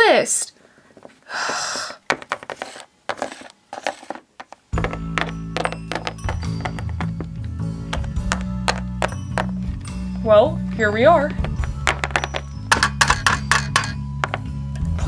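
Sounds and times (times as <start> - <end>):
plastic toys tapping on hard floor: 2.1 - 9.6, 11.4 - 14.5
background music with low bass: 4.8 - 15.0.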